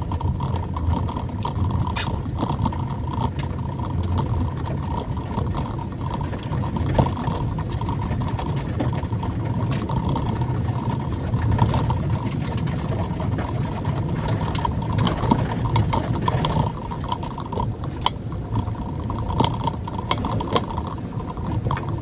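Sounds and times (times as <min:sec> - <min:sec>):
car driving on dirt road: 0:00.0 - 0:22.0
sharp click: 0:02.0 - 0:02.2.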